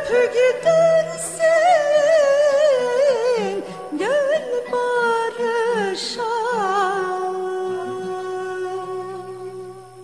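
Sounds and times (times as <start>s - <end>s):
woman singing melismatic ornaments: 0.0s - 9.9s.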